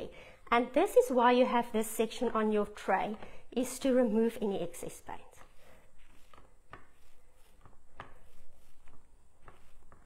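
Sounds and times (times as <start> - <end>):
paint roller rolling in tray: 2.0 - 10.0.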